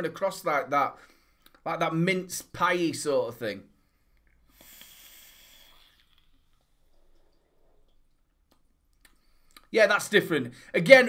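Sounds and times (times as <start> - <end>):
breathing out vapour: 4.0 - 6.5
air hissing through vape: 4.5 - 6.5.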